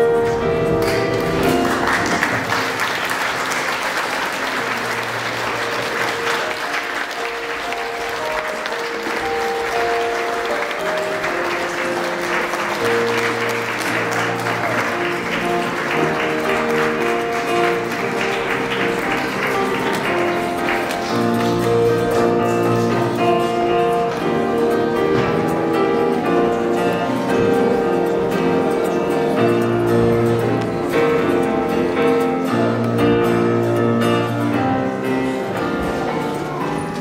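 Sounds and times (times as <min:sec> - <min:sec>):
instrumental music: 0:00.0 - 0:37.0
audience clapping: 0:00.7 - 0:33.0.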